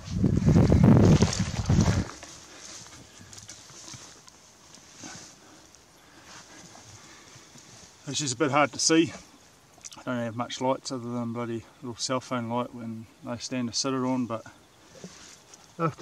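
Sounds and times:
rustling through long dry grass: 0.0s - 9.8s, 14.0s - 16.0s.

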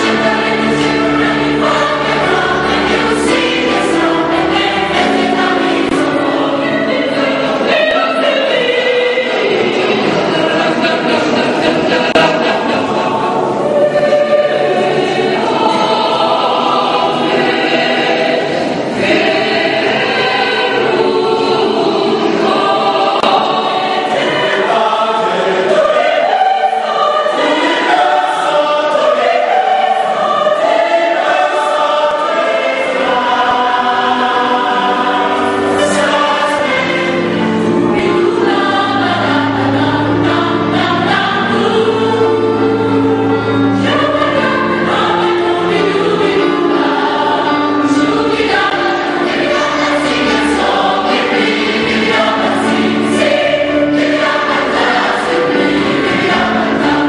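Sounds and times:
deep low choir voices: 0.0s - 57.0s
large choir singing: 0.0s - 57.0s.

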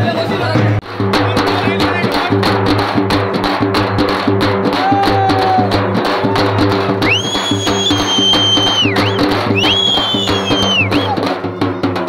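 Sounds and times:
drums beaten in fast rhythm: 0.0s - 12.0s
long high whistle: 7.0s - 11.2s.

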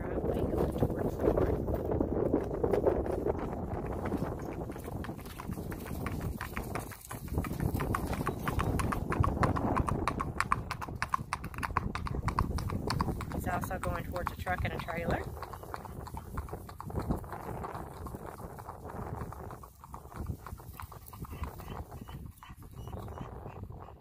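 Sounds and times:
clip-clop of shod hooves on pavement: 0.0s - 24.0s.

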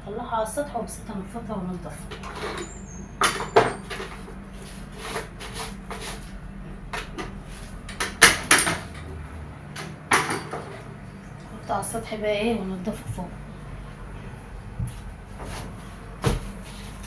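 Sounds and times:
steady low hum: 0.0s - 17.0s
broom sweeping tiled floor: 3.9s - 6.4s, 7.3s - 7.8s, 14.8s - 17.0s.

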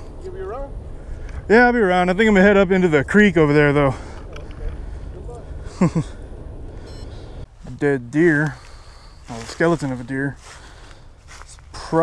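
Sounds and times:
low outdoor rumble: 0.0s - 12.0s
man laughing: 5.3s - 6.3s.

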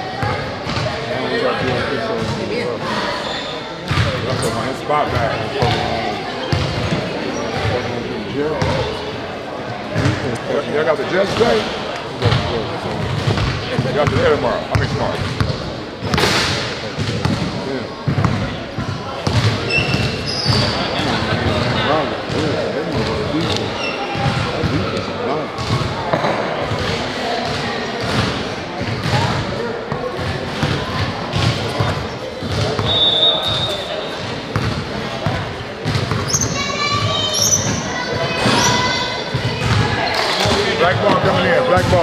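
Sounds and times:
spectator chatter: 0.0s - 42.0s
basketball bouncing on court: 0.1s - 1.0s, 3.9s - 7.9s, 12.2s - 33.6s, 34.2s - 42.0s.

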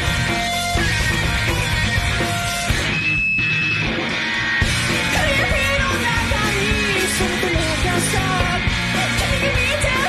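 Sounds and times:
bass guitar: 0.0s - 10.0s
distorted electric guitar: 0.0s - 10.0s
drums: 0.0s - 10.0s.

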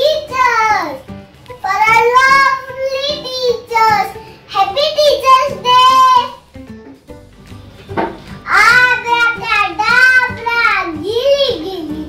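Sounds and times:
girl singing: 8.5s - 12.0s.

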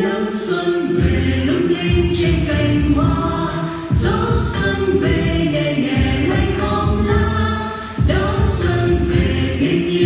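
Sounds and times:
choir singing long held notes: 0.0s - 10.0s
musical accompaniment: 0.0s - 10.0s.

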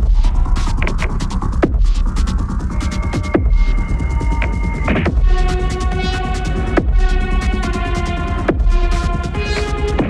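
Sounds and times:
melodic electronic music: 0.0s - 10.0s.

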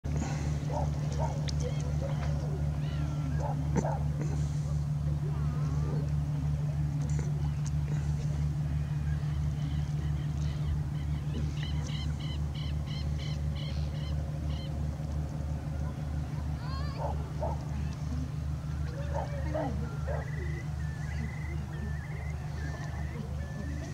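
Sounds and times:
pulsing low motor drone: 0.0s - 23.9s
birds calling: 0.1s - 23.9s
faint voices: 0.1s - 23.9s.

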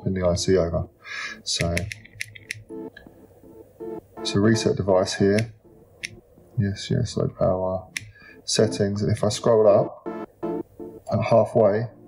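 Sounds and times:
faint music: 0.0s - 12.0s
phone keypad clicks: 1.6s - 3.1s.

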